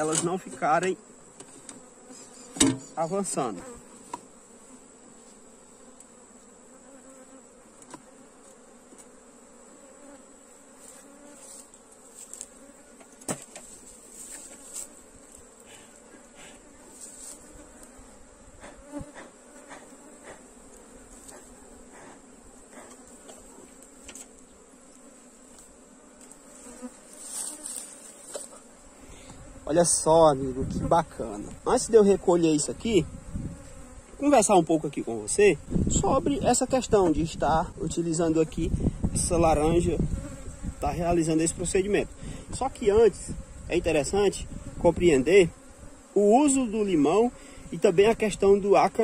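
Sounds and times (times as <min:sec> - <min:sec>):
honeybee colony humming: 0:00.0 - 0:49.0.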